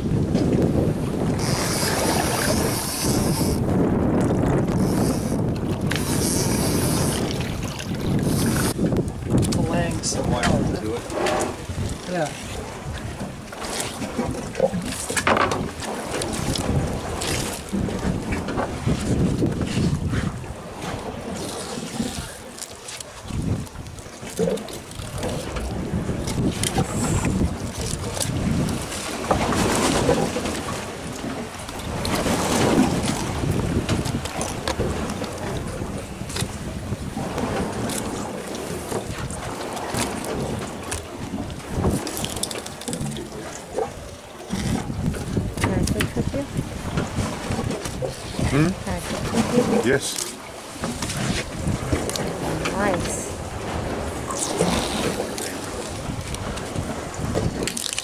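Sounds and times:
water sloshing against boat: 0:00.0 - 0:58.0
wind rumbling on microphone: 0:00.0 - 0:58.0.

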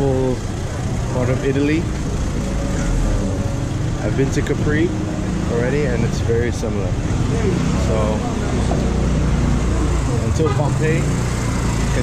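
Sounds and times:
street low rumble: 0:00.0 - 0:12.0.

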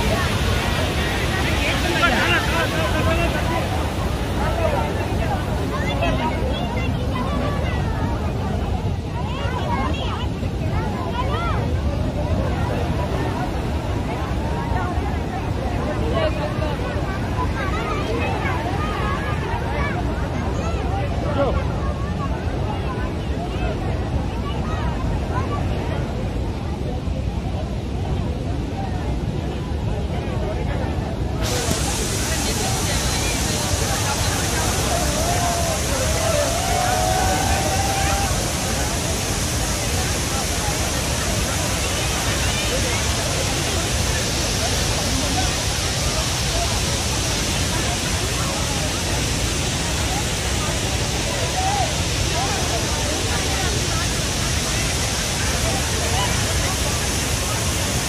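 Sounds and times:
water roaring from spillway: 0:00.0 - 0:58.0.

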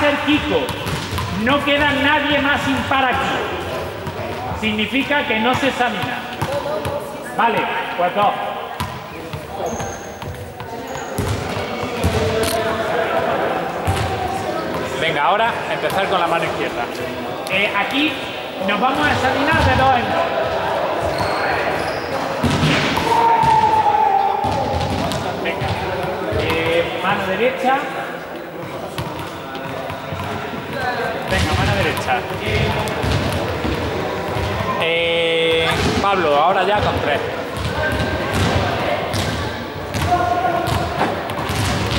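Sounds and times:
balls bouncing on floor: 0:00.2 - 0:07.8, 0:08.8 - 0:12.6, 0:13.8 - 0:15.0, 0:24.4 - 0:26.9, 0:28.6 - 0:34.8, 0:35.4 - 0:41.9
voices talking: 0:01.3 - 0:41.9.

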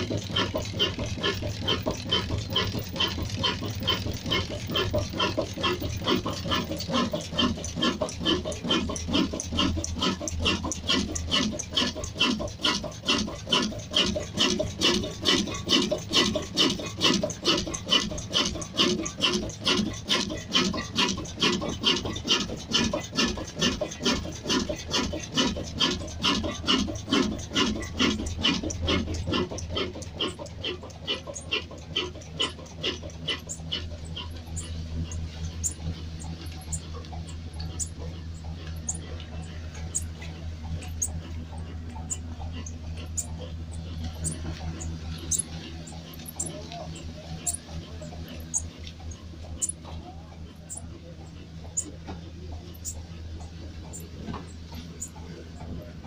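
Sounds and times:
diesel engine chugging: 0:00.0 - 0:56.0
low engine hum: 0:00.0 - 0:56.0.

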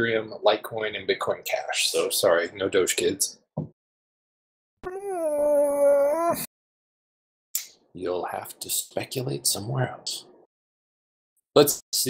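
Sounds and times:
dog howling: 0:04.8 - 0:06.5.

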